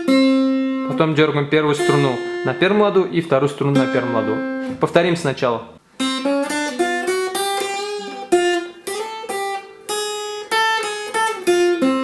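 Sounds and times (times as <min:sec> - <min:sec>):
electro-acoustic guitar solo: 0:00.0 - 0:05.1, 0:05.7 - 0:12.0.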